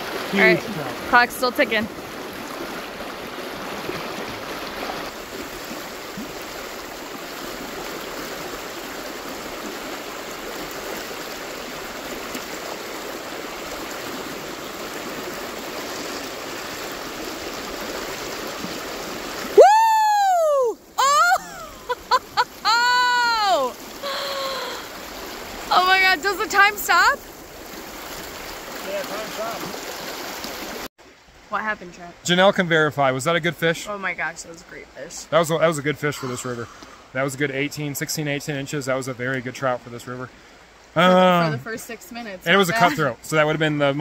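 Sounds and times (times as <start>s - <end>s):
rocky river rushing: 0.0s - 30.9s, 40.9s - 44.0s.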